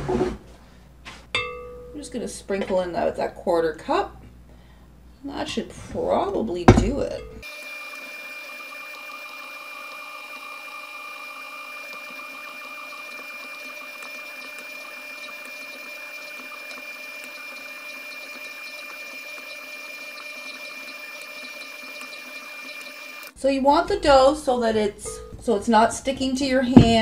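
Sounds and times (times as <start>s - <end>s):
stand mixer motor hum: 7.4s - 23.4s.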